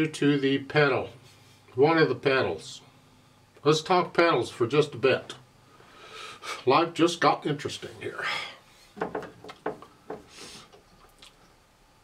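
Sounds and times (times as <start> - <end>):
person breathing: 5.7 - 6.6, 10.3 - 10.8.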